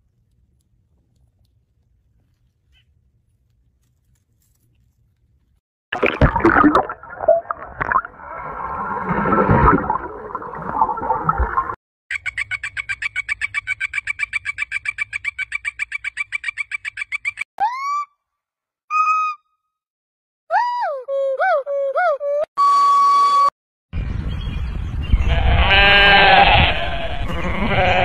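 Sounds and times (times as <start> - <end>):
short whistle-like calls: 18.9 - 19.5.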